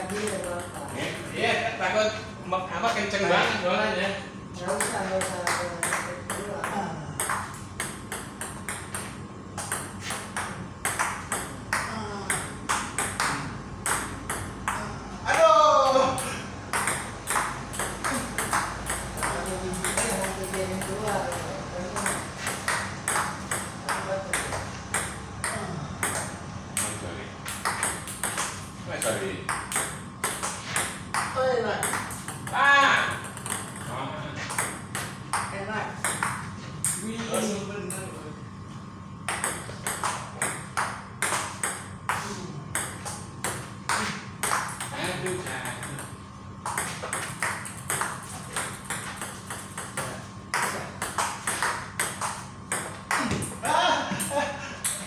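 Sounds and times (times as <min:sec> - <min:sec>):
ping pong ball clicking: 0:00.0 - 0:01.4, 0:04.6 - 0:15.4, 0:16.2 - 0:33.9, 0:34.5 - 0:37.0, 0:39.3 - 0:53.6.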